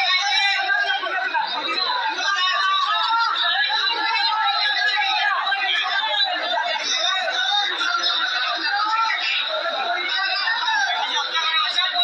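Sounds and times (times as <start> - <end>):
room full of chatter: 0.0 - 12.0.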